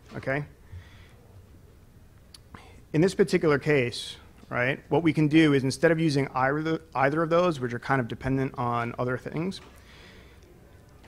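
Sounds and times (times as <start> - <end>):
man talking: 0.0 - 0.6, 2.6 - 9.7.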